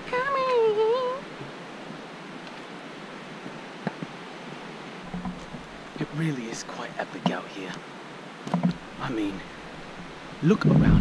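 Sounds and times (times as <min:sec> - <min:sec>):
steady rushing hiss: 0:00.0 - 0:11.0
sharp knocks: 0:05.1 - 0:05.7, 0:08.4 - 0:08.8.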